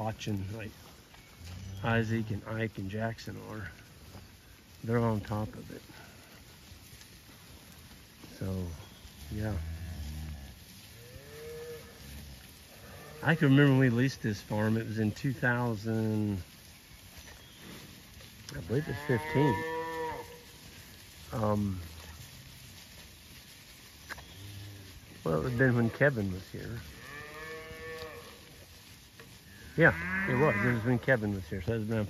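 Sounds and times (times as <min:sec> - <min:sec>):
cow mooing: 0:09.3 - 0:13.5, 0:18.7 - 0:20.4, 0:27.0 - 0:28.4, 0:29.7 - 0:31.0.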